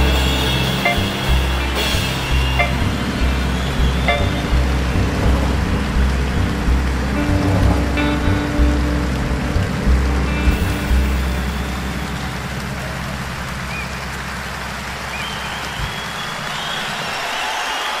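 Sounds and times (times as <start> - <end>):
jazz band playing: 0.0 - 14.5
strong bass notes: 0.0 - 16.2
audience applause: 0.0 - 18.0.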